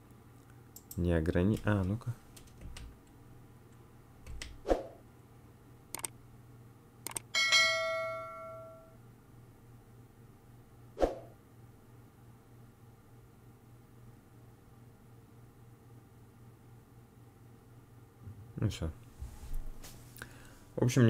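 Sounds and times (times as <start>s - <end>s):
clicks: 7.1s - 7.3s
bell-like chime: 7.4s - 9.0s.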